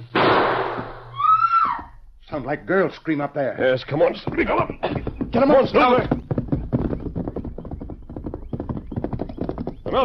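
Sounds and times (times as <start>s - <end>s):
galloping horse hoofbeats: 3.6s - 10.0s.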